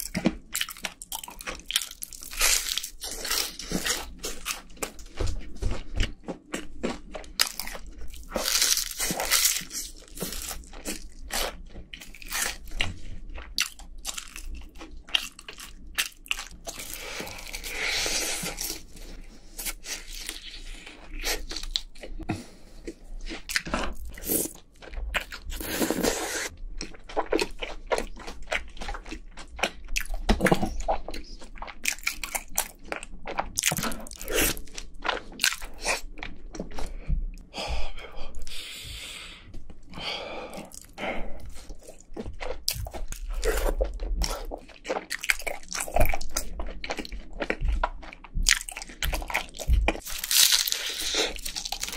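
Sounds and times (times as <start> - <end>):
crunchy chewing: 0.0 - 37.0, 39.6 - 51.9.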